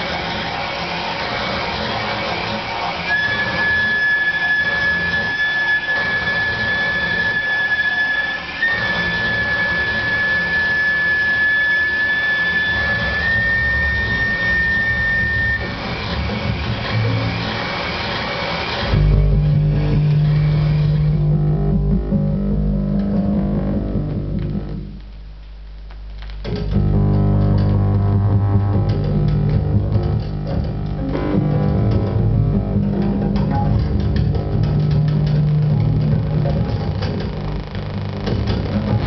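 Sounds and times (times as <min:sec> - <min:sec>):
rough electronic noise texture: 0:00.0 - 0:39.0
high whistling tone: 0:02.8 - 0:21.6
loud low hum: 0:15.3 - 0:25.8, 0:26.4 - 0:39.0.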